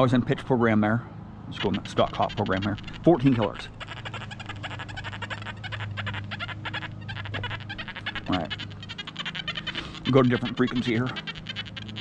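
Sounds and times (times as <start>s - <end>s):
metal detector crackling chatter: 1.6s - 12.0s.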